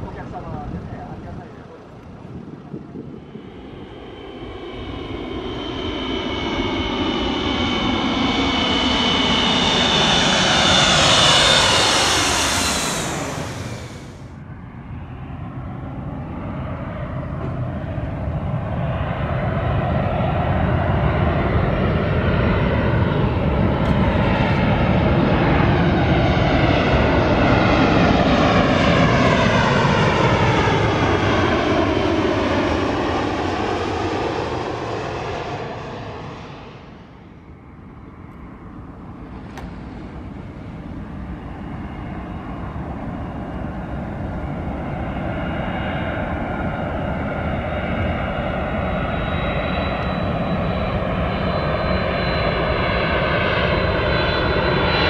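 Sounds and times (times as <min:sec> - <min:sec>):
jet airliner fan whine: 0:00.0 - 0:55.0
jet engine rumble: 0:00.0 - 0:55.0.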